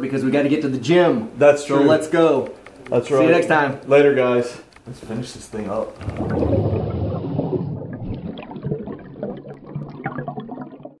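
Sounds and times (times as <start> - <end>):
water bubbling and gurgling: 6.0 - 11.0.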